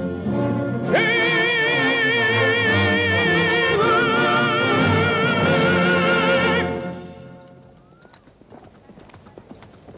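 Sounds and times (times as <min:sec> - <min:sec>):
orchestral operatic music: 0:00.0 - 0:07.6
horse hooves clip-clopping: 0:07.3 - 0:09.9.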